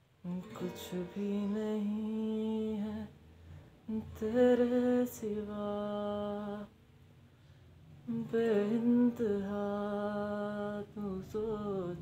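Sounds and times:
man singing a steady note: 0.2s - 3.2s, 3.8s - 6.8s, 8.0s - 12.0s.

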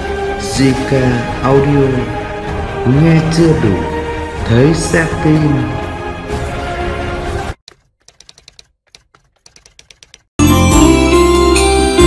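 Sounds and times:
keyboard key clicks: 7.7s - 10.3s.

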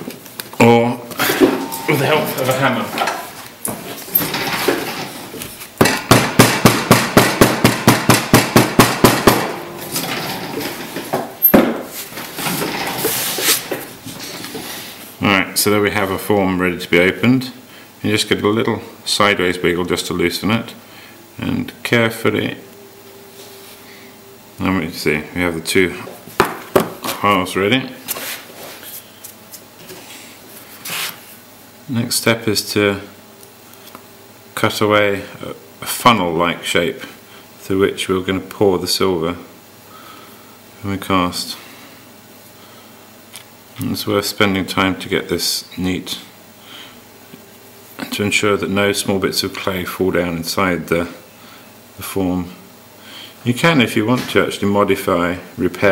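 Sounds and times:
rustling scrape: 11.9s - 15.1s, 28.1s - 29.1s, 29.8s - 31.4s.

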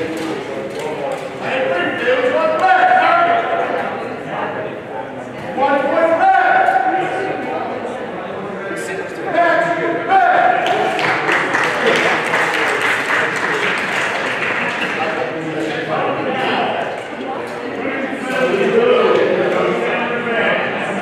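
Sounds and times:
people talking in echoing hall: 0.0s - 21.0s.

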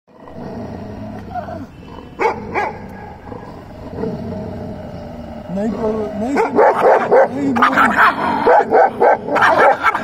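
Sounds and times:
dog growling: 0.1s - 10.0s
dog barking: 2.2s - 2.9s, 6.3s - 10.0s.

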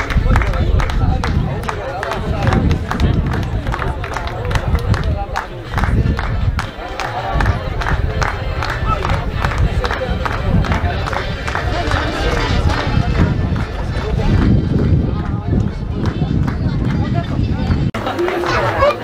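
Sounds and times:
wind rumble on microphone: 0.0s - 18.0s
crowd talking: 0.0s - 19.0s.

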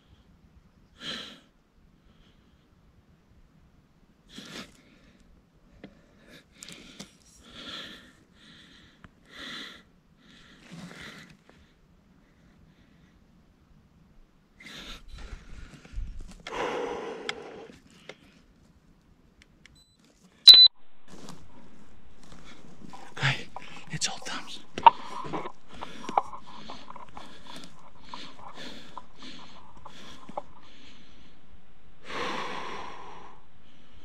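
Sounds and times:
breathing: 4.4s - 13.2s, 14.6s - 18.5s, 21.6s - 34.0s
steady low hiss: 20.6s - 34.0s
shuffling: 21.1s - 31.7s.

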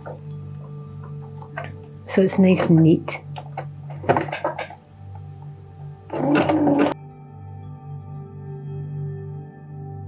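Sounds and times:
soft background music: 0.0s - 10.0s
handling clicks and rustles: 3.3s - 5.5s
sewing machine stitching: 6.1s - 7.0s.

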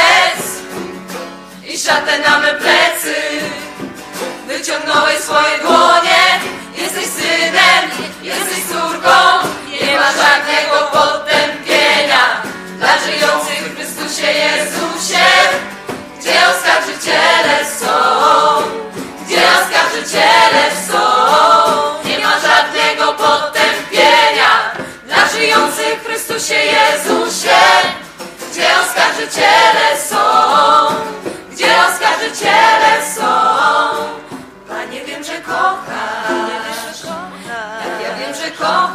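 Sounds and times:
group singing religious song: 0.0s - 0.8s, 1.5s - 38.9s.

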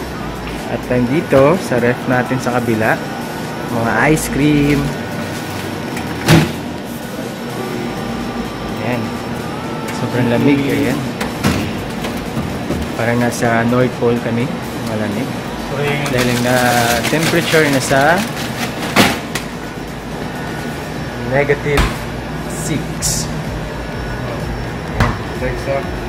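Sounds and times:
steady machine hum: 0.0s - 26.0s.

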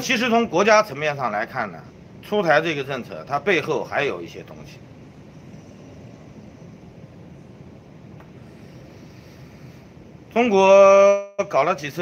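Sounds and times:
outdoor background hiss and hum: 0.0s - 12.0s.

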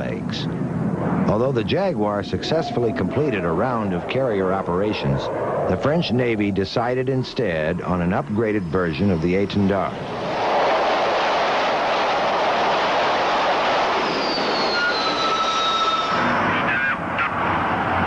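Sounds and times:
jet engine rushing: 0.0s - 18.0s
thin turbine whine: 0.0s - 18.0s.

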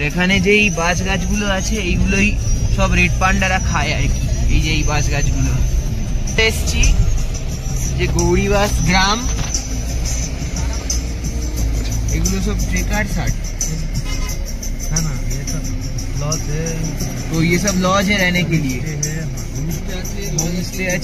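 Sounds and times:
background music: 0.0s - 21.0s
car engine and road rumble: 0.0s - 21.0s
person speaking: 6.3s - 7.2s.

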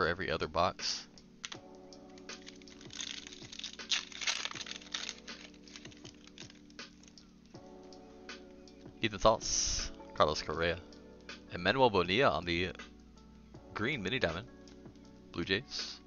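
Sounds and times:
quiet background music: 0.0s - 16.0s
light clicks of cards: 1.4s - 7.3s
foil wrapper crinkling: 2.2s - 7.2s.

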